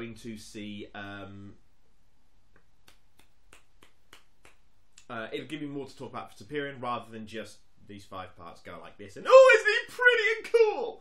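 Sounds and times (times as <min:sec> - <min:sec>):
light finger snaps: 0:02.5 - 0:05.1.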